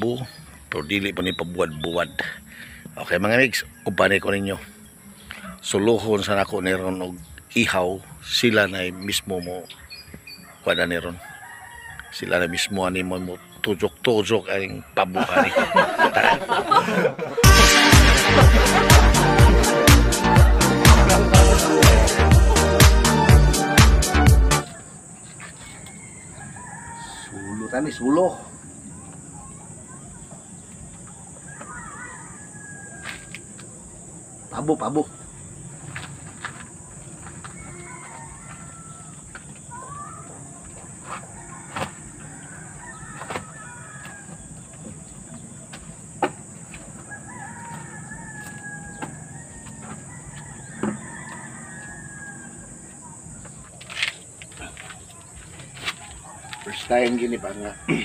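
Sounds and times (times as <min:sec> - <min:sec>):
rooster crowing: 0:11.0 - 0:13.6, 0:15.2 - 0:23.8, 0:24.4 - 0:28.7, 0:31.3 - 0:33.6, 0:37.4 - 0:40.2, 0:41.1 - 0:44.8, 0:46.9 - 0:53.3, 0:55.8 - 0:58.0.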